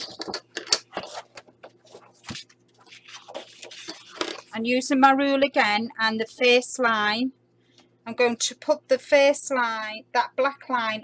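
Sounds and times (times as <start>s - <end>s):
paper and card rustling: 0.0s - 4.6s.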